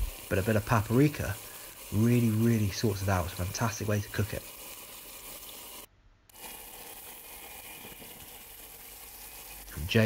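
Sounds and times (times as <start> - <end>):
fish sizzling in a frying pan: 0.0 - 10.0.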